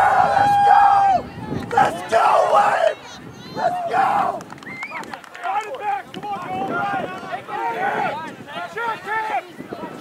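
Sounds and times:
people shouting and calling out: 0:00.0 - 0:10.0.

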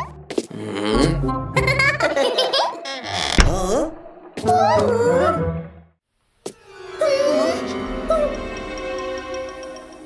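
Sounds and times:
background music: 0:00.0 - 0:02.7, 0:03.4 - 0:10.0.

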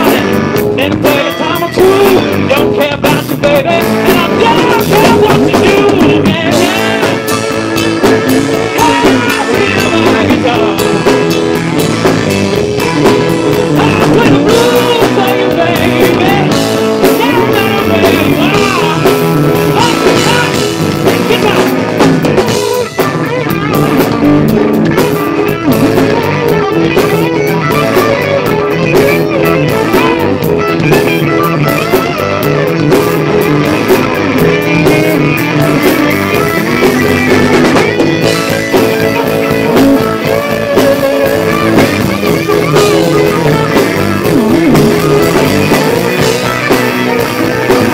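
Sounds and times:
bass guitar: 0:00.0 - 0:47.9
drum kit: 0:00.0 - 0:47.9
electric guitar: 0:00.0 - 0:47.9.

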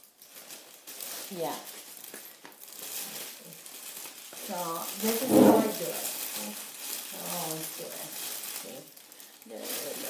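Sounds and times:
cellophane crinkling: 0:00.0 - 0:10.0.

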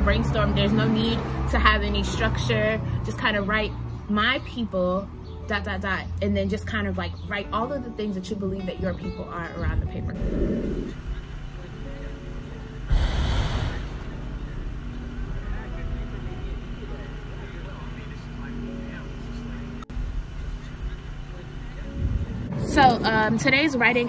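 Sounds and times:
low rumble of traffic: 0:00.0 - 0:24.0
rush of noise: 0:12.9 - 0:15.3.

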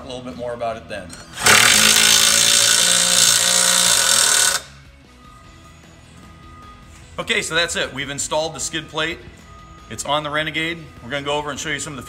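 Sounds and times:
power tool running: 0:01.3 - 0:04.8.

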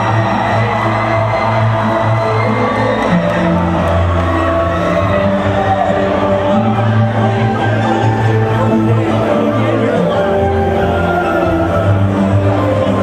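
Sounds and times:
crowd cheering: 0:00.0 - 0:13.0.

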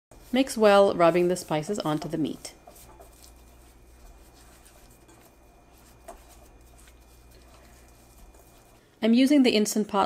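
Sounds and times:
hand rubbing spice into meat: 0:00.1 - 0:08.9
low steady hum: 0:00.1 - 0:10.0.

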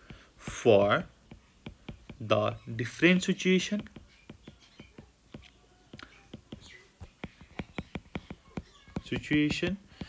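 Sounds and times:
stylus tapping on glass screen: 0:00.0 - 0:02.6, 0:03.7 - 0:10.0.

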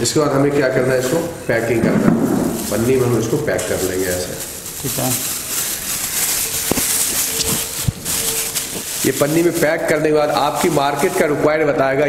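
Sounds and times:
plastic bag crinkling: 0:00.6 - 0:11.6.

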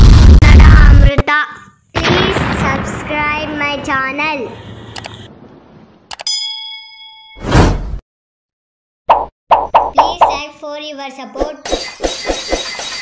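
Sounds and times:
bell ding: 0:06.2 - 0:07.4, 0:11.7 - 0:13.0.

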